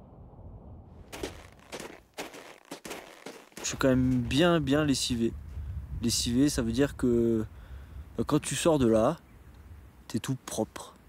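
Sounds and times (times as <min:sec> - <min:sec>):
boots crunching in snow: 0:01.1 - 0:04.6.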